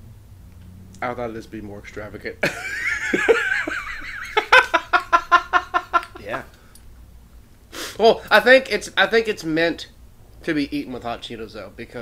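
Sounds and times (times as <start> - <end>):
man laughing: 2.4 - 6.5.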